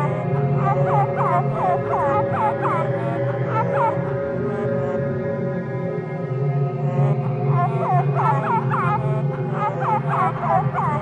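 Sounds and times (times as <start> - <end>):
low ominous music drone: 0.0 - 11.0.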